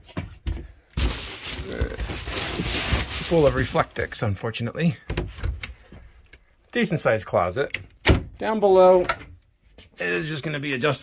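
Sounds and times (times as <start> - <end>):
foil insulation crinkling: 1.0 - 4.3.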